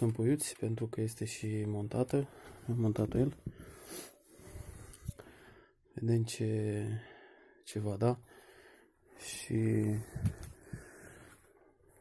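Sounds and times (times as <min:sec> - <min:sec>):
person breathing close to microphone: 0:02.3 - 0:02.8, 0:03.4 - 0:05.8, 0:08.2 - 0:09.2, 0:09.8 - 0:12.0.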